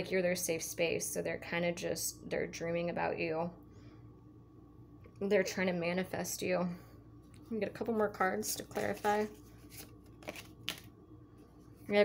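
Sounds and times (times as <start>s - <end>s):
woman speaking: 0.0s - 3.6s, 5.2s - 6.8s, 7.4s - 9.4s
cards sliding and snapping: 8.6s - 10.9s.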